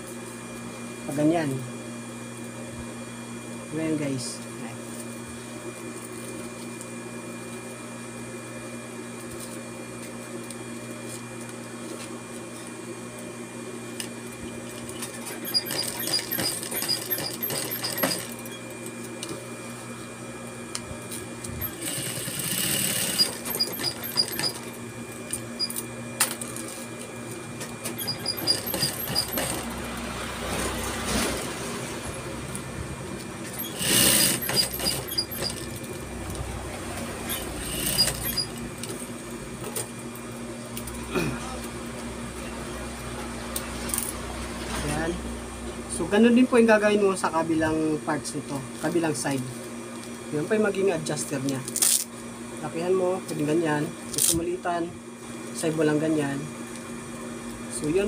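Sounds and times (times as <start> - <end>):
sewing machine motor humming: 14.9 - 18.6, 21.6 - 24.8, 27.8 - 39.1
sewing needle rapid stitching: 15.3 - 18.4, 21.6 - 24.6, 28.0 - 29.7, 33.5 - 35.7, 37.3 - 38.6.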